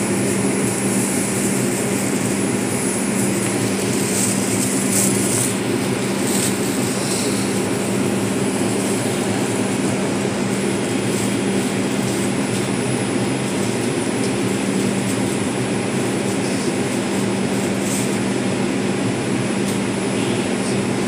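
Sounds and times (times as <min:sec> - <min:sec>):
ventilation air rushing: 0:00.0 - 0:21.0
subway car interior hum: 0:00.8 - 0:12.7.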